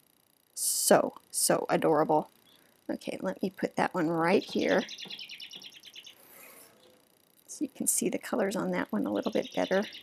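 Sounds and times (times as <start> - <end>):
small bird trilling: 4.3 - 7.1, 9.0 - 10.0.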